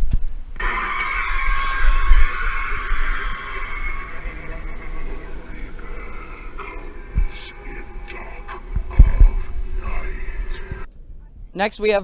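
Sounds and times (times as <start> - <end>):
low rumble: 0.6 - 11.6.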